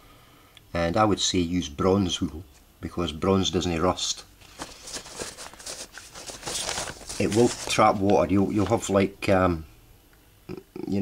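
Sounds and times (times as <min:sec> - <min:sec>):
paper rustling: 0:04.4 - 0:09.0.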